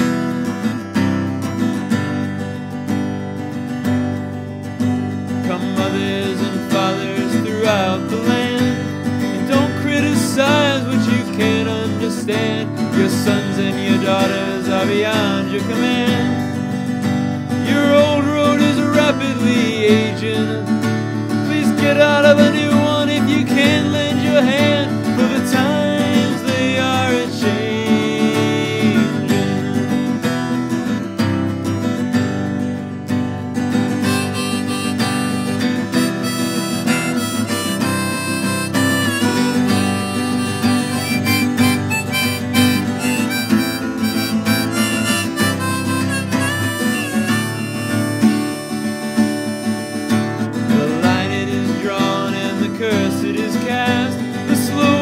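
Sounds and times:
strummed acoustic guitar: 0.0s - 55.0s
harmonica playing: 33.9s - 51.1s.

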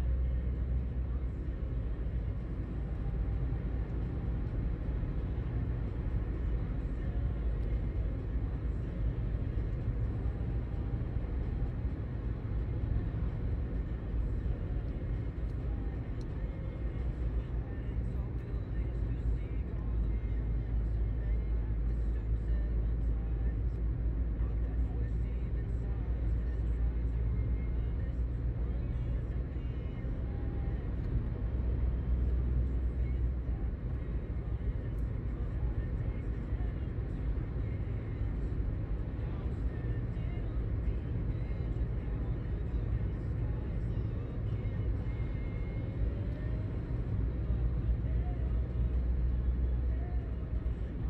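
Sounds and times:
car cabin road rumble: 0.0s - 51.0s.

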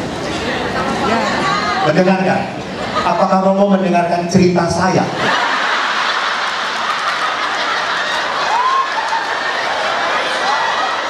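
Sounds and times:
audience applauding: 5.3s - 11.0s.

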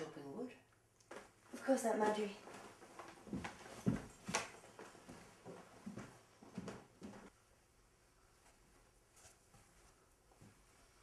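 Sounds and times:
hard footsteps across a room: 1.1s - 7.4s, 8.4s - 11.0s.

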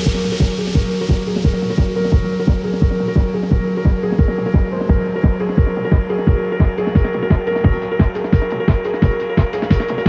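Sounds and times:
drum and bass music: 0.0s - 10.0s.

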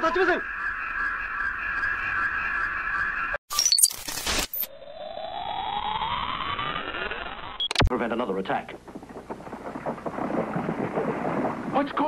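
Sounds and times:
thunder-like rumbling and crackling: 8.0s - 12.0s.

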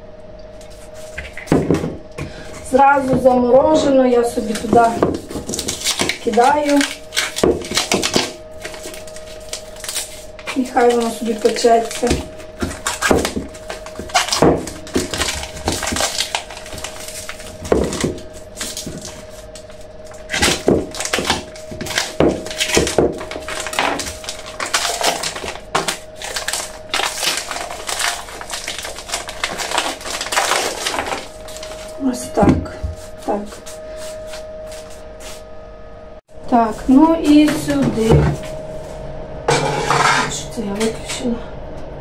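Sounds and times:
faint steady hum: 0.0s - 42.0s
plastic bag crinkling: 4.2s - 32.1s.

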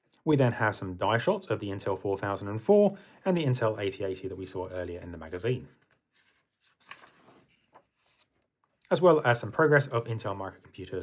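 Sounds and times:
magazine page turning: 5.4s - 8.5s.

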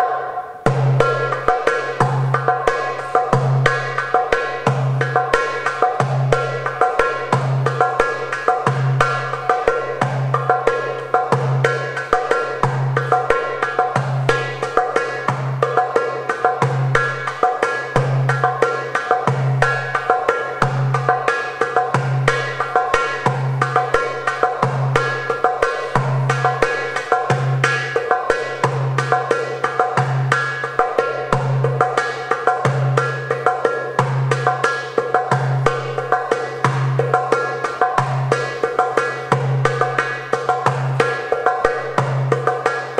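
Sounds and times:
hand drum rhythm: 0.0s - 42.9s.

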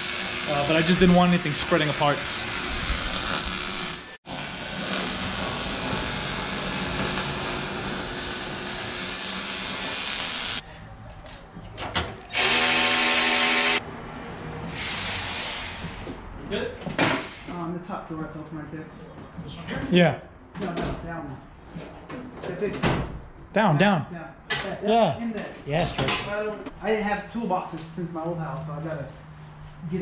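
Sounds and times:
arc welder crackling: 0.0s - 10.6s.

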